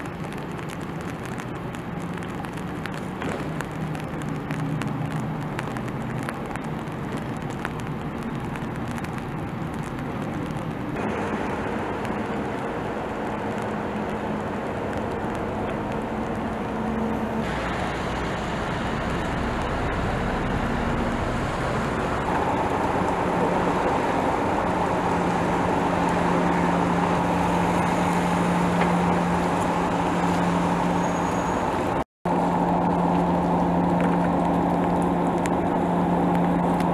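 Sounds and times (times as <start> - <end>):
diesel engines droning: 0.0 - 36.9.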